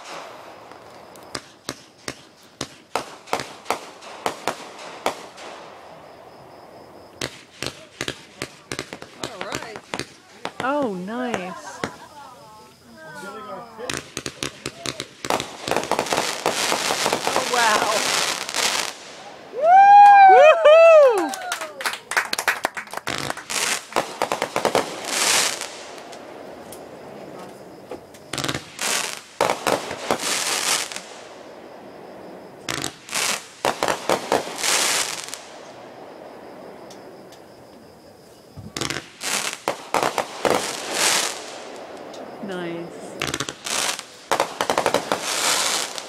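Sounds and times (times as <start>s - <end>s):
fireworks crackling bangs: 0.0s - 20.1s, 20.9s - 46.0s.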